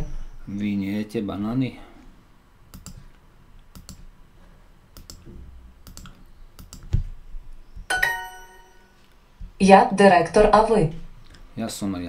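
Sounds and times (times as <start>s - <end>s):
computer mouse button clicking: 2.7s - 3.0s, 3.8s - 4.0s, 5.0s - 5.2s, 5.8s - 7.0s.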